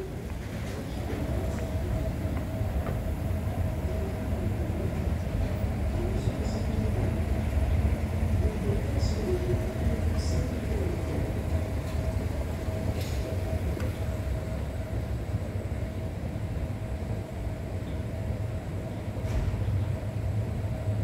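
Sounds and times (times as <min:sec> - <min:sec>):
constant hum: 0:00.0 - 0:21.0
escalator mechanical rumble: 0:00.0 - 0:21.0.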